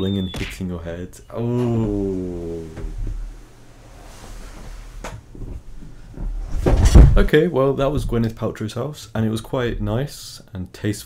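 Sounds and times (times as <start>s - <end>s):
soft knocks and rustling: 2.7s - 8.3s.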